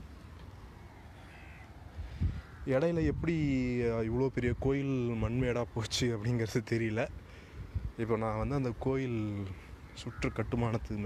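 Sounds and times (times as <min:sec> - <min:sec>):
bird calling faintly: 0:00.0 - 0:03.0, 0:08.6 - 0:11.0
outdoor background hiss: 0:00.0 - 0:11.0
man talking: 0:02.7 - 0:07.2, 0:08.0 - 0:11.0.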